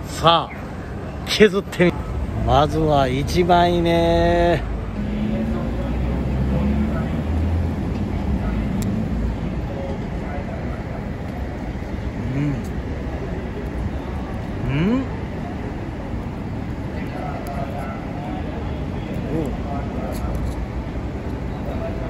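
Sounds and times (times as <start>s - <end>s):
city street traffic noise: 0.0s - 22.0s.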